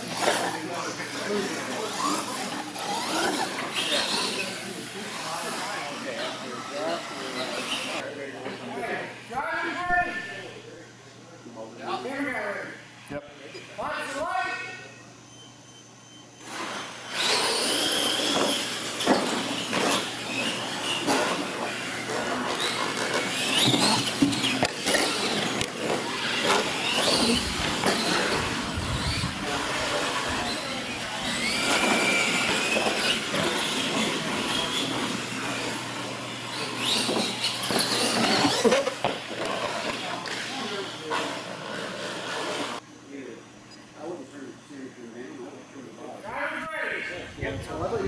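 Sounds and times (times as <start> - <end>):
electric motors whining: 0.0 - 9.3, 14.2 - 42.9.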